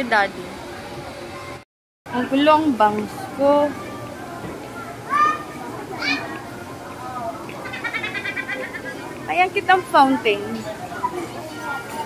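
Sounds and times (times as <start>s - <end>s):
busy crowd: 0.0s - 12.0s.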